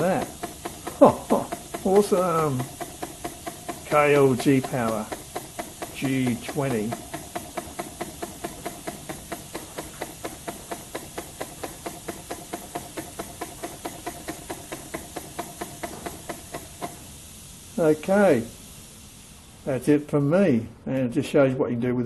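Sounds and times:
model steam engine exhaust puffs: 0.0 - 20.8
air hissing: 0.0 - 21.0.

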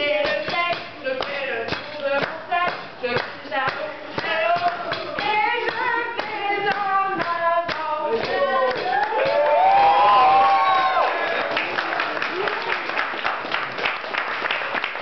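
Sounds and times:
women singing together: 0.0 - 9.4
hand claps: 0.7 - 15.0.

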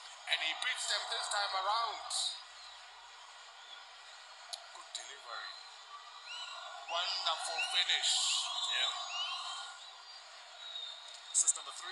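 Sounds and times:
distant indistinct voices: 0.0 - 11.9.

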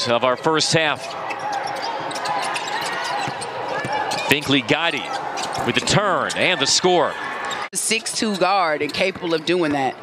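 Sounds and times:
players calling out: 0.0 - 10.0
shoe squeaks: 1.0 - 5.8, 7.3 - 10.0.

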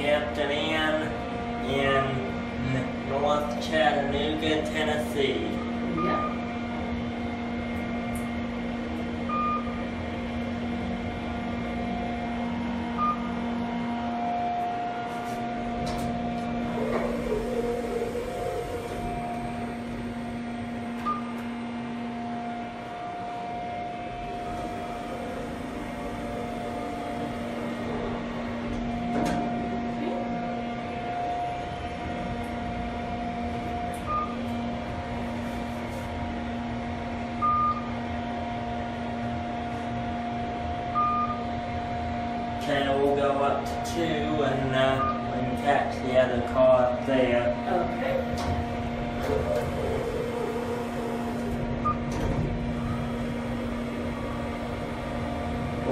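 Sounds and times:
elevator two-tone hum: 0.0 - 55.9
short elevator beeps: 5.9 - 6.4, 21.0 - 21.4, 34.0 - 34.4, 37.4 - 37.9, 41.0 - 41.4.

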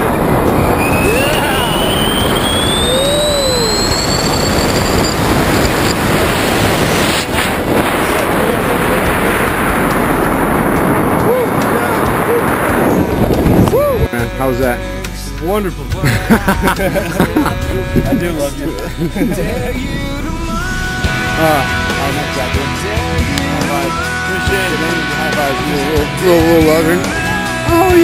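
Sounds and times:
wind buffeting microphone: 0.0 - 14.2, 16.5 - 24.2
faint whistle rising in pitch: 0.5 - 6.0.

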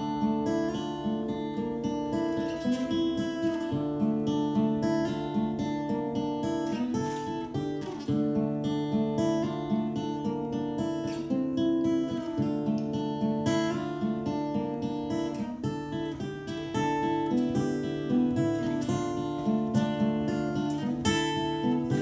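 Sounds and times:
acoustic guitar strumming: 0.0 - 22.0.

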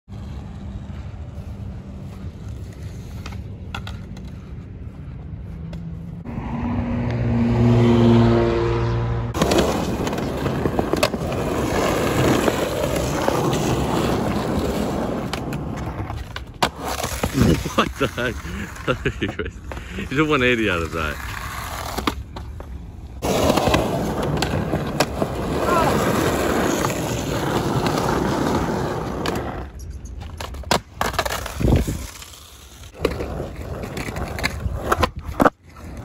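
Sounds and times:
skateboard wheels rolling on concrete: 0.0 - 7.6, 9.3 - 36.0
skateboard clacking on concrete: 9.4 - 18.2.

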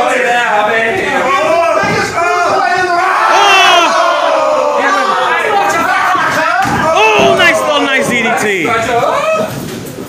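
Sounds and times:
several voices yelling: 1.0 - 9.5
shrill yell: 1.7 - 8.4.

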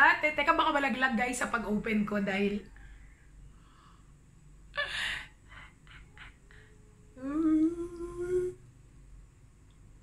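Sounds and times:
woman humming: 4.8 - 8.6.

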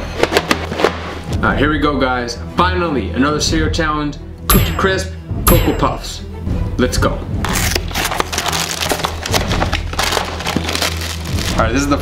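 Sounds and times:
plastic bag crinkling and tearing: 7.6 - 11.7.

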